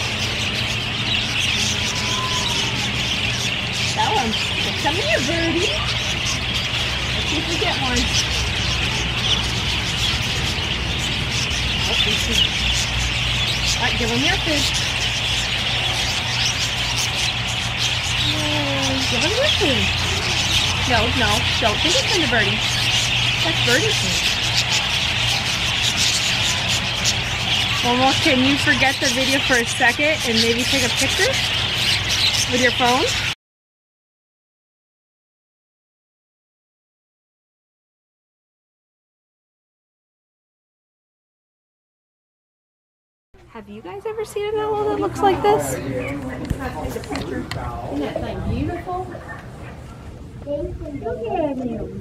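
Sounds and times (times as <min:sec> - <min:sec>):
budgerigars chattering: 0:00.0 - 0:33.4
steady low hum: 0:00.0 - 0:33.4.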